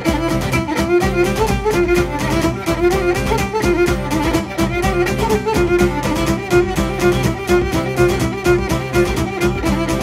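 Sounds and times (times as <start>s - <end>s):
lute accompaniment: 0.0s - 10.0s
violin dance melody: 0.0s - 10.0s.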